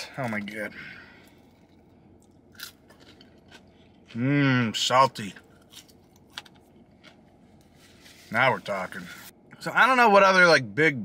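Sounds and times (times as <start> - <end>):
chewing french fries: 1.2 - 7.7.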